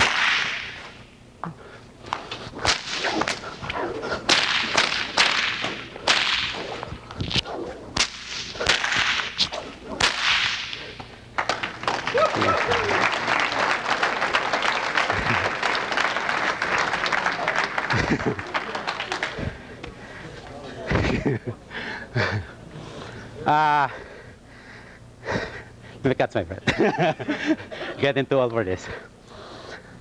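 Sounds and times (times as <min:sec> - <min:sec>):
whip cracking: 0:00.0 - 0:01.0, 0:02.1 - 0:12.5
audience applause: 0:11.4 - 0:20.7.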